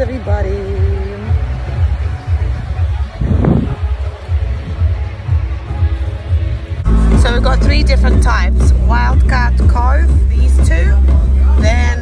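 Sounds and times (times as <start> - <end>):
wind buffeting microphone: 1.4 - 5.1.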